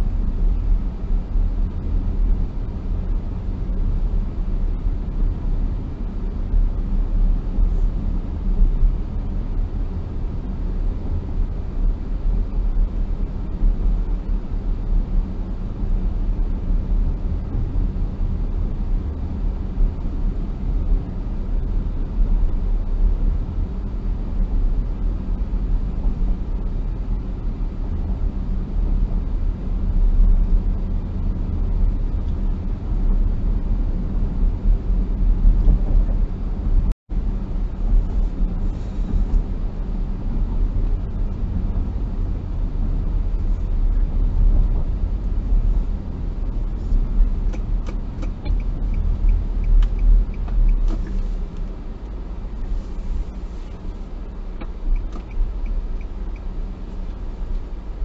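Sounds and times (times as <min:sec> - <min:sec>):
car interior road noise: 0:00.0 - 0:58.0.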